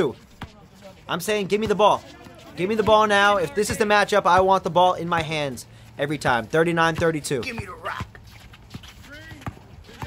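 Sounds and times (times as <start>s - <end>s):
basketball bouncing on hard court: 2.8s - 4.5s, 6.8s - 8.1s, 8.7s - 10.0s.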